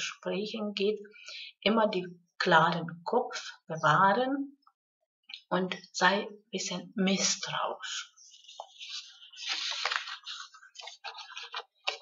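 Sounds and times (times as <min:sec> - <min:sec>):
rustling: 0:08.2 - 0:12.0.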